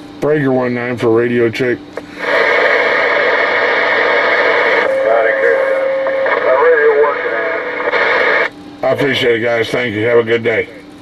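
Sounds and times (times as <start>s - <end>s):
distant voices over radio: 1.5s - 10.9s
radio static: 2.0s - 10.8s.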